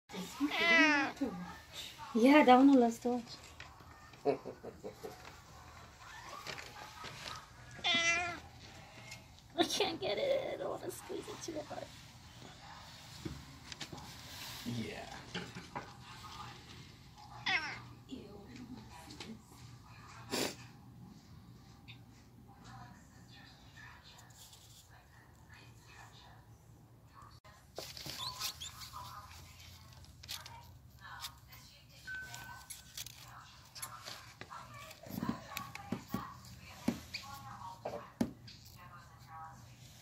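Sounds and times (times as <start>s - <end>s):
cat meowing: 0.3s - 1.2s, 7.8s - 8.5s, 17.4s - 18.0s.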